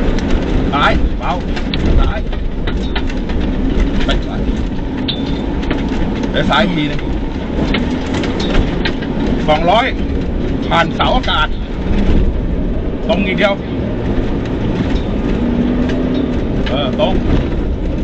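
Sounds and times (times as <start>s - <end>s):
car engine drone: 0.0s - 18.0s
tyre and road noise: 0.0s - 18.0s.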